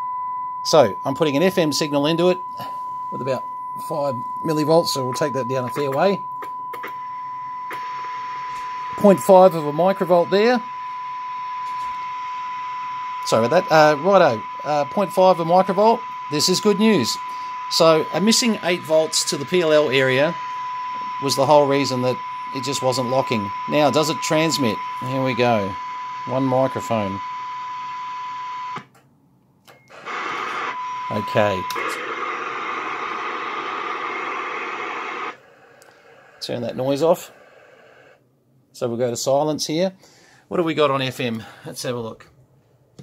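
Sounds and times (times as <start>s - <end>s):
short high beep: 0.0s - 7.8s
steady single-pitch test tone: 0.0s - 28.8s, 30.0s - 35.4s
faint radio hiss: 7.7s - 10.8s, 11.7s - 27.2s, 30.0s - 42.4s.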